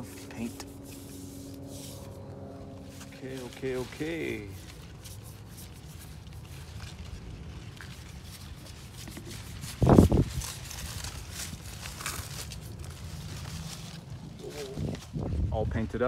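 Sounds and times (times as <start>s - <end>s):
rustling and handling noise: 0.0s - 15.7s
low steady rumble: 0.0s - 16.0s.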